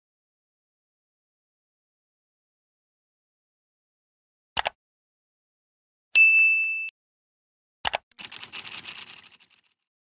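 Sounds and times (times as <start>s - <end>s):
notification bell ding: 6.2s - 6.9s
fast run of ticks: 8.2s - 9.9s.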